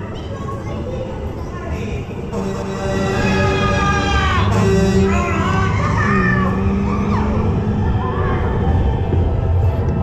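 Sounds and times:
ride vehicle rumble: 0.0 - 10.0
music with pitched effects: 2.3 - 10.0.

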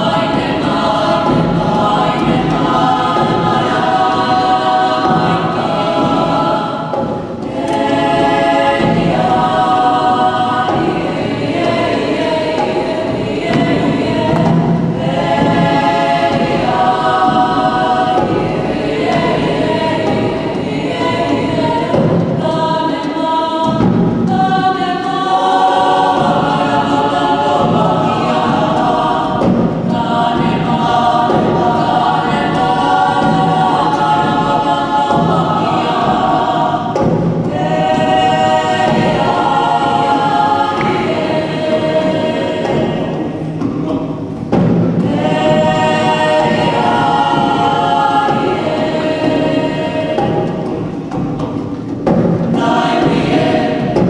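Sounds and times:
choir of young voices singing: 0.0 - 54.0.

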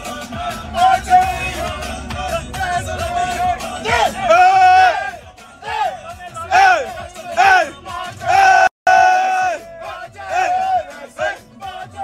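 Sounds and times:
low beat: 0.0 - 12.0
men chanting and singing: 0.0 - 12.0.

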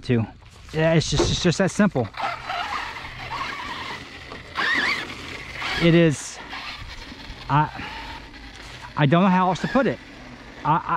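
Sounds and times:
electric motor whining: 1.9 - 10.9.

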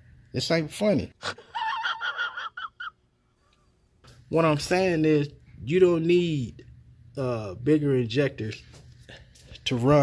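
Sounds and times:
high-pitched wheezing laughter: 1.2 - 3.0.

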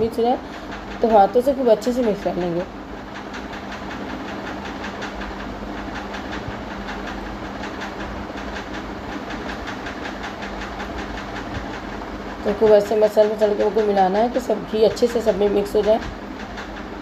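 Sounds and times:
machine running with rapid ticking: 0.0 - 17.0.

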